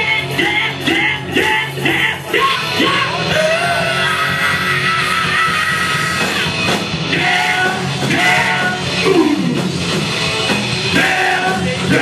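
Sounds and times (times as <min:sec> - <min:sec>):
man singing: 0:00.0 - 0:06.4, 0:07.1 - 0:09.5, 0:10.9 - 0:12.0
bass guitar: 0:00.0 - 0:12.0
distorted electric guitars: 0:00.0 - 0:12.0.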